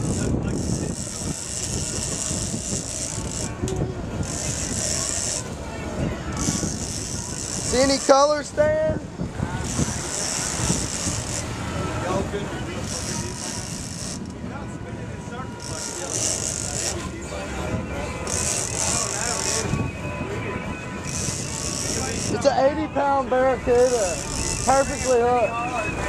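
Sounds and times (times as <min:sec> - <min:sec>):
fishing reel whirring: 0:00.0 - 0:03.6, 0:04.2 - 0:05.6, 0:06.3 - 0:08.2, 0:09.6 - 0:11.5, 0:12.8 - 0:14.3, 0:15.6 - 0:17.0, 0:18.2 - 0:19.8, 0:21.0 - 0:22.4, 0:23.8 - 0:25.4
boat engine: 0:00.0 - 0:26.0.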